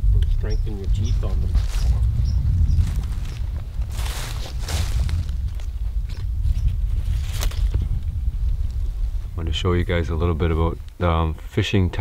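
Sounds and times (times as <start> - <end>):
rustling through low plants: 0.0 - 11.6
wind rumble on microphone: 0.0 - 12.0.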